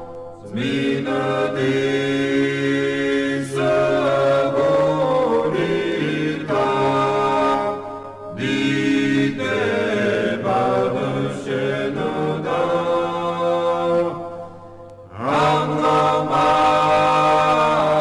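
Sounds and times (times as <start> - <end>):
choir singing a church chant: 0.0 - 18.0.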